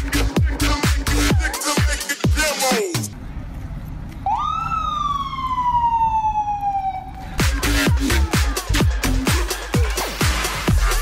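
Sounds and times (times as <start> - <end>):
low rumble of street noise: 0.0 - 11.0
emergency vehicle siren: 4.2 - 8.3.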